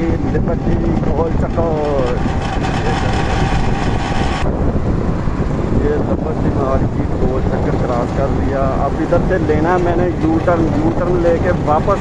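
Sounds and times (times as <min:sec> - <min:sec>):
moving vehicle rumble: 0:00.0 - 0:12.0
wind rushing over microphone: 0:00.0 - 0:12.0.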